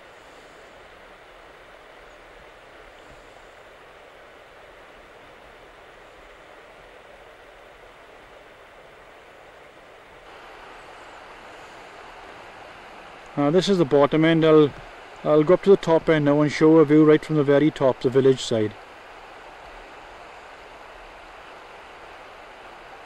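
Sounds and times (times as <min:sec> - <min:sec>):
river flowing over stones: 0:00.0 - 0:23.0.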